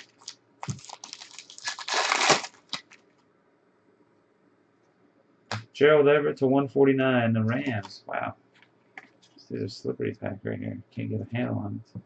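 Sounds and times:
foil wrapper crinkling and tearing: 0.0 - 3.1.

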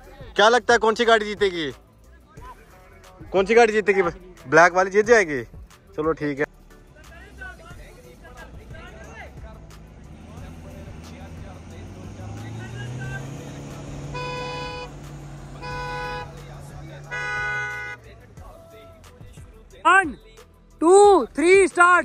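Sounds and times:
engines revving hard: 8.3 - 18.5
car horn honking: 12.7 - 18.2.

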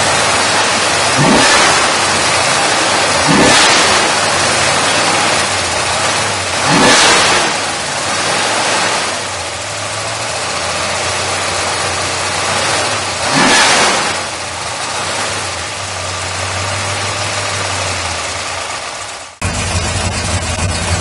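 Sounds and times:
car engine idling: 0.0 - 21.0
engine revving: 0.0 - 21.0.

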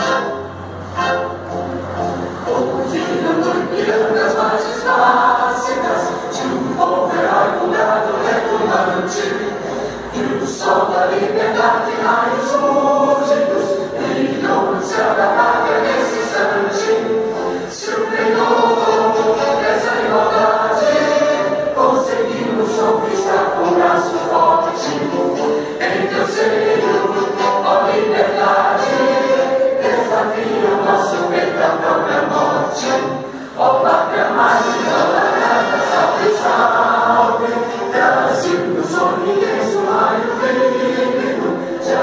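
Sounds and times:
large group singing an anthem: 0.0 - 42.0
music: 0.0 - 42.0.

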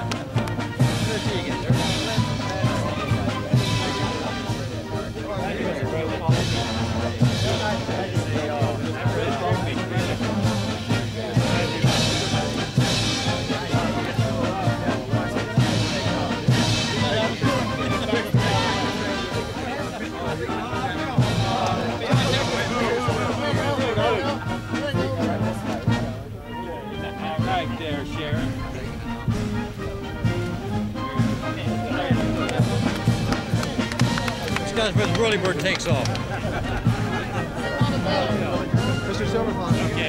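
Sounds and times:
brass band playing: 0.0 - 40.0
crowd chatter: 0.0 - 40.0.

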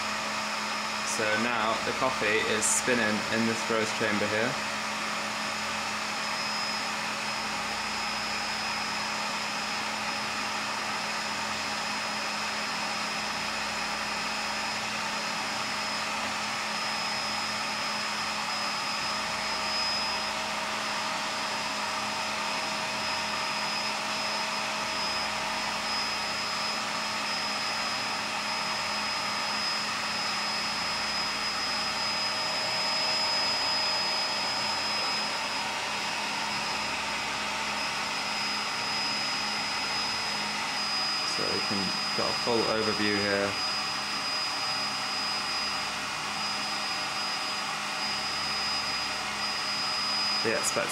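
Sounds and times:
coffee roaster fan whirring: 0.0 - 50.9
thin high whine: 0.0 - 50.9.

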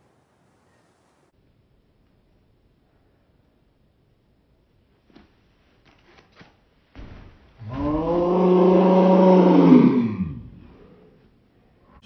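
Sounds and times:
climber growling with effort: 7.6 - 11.0.

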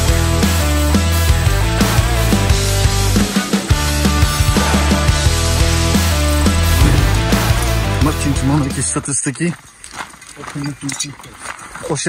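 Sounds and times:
footsteps on dirt track: 9.2 - 12.0.

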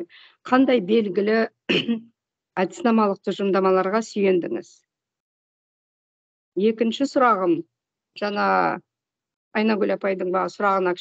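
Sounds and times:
woman talking: 0.0 - 2.0, 2.6 - 4.8, 6.6 - 8.8, 9.6 - 11.0.

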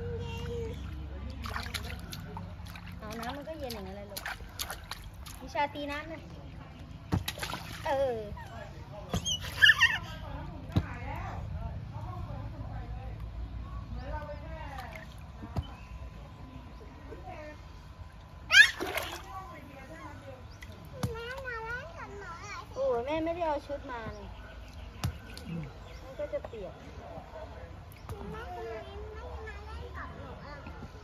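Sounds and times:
toddler babbling: 0.0 - 1.0
slaps on water: 7.1 - 7.9, 25.0 - 25.5
child squealing: 18.5 - 18.9.

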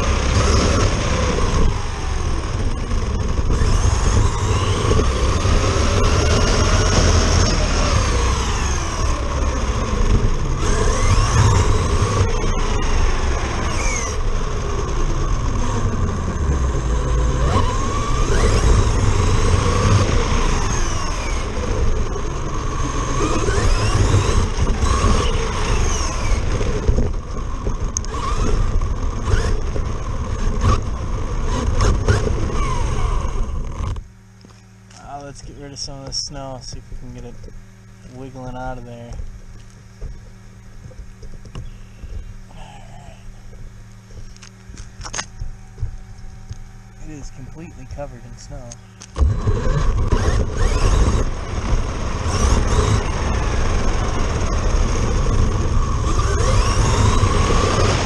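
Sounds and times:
rc truck motor whine: 0.0 - 58.0
tyre and wind rumble: 0.0 - 58.0.

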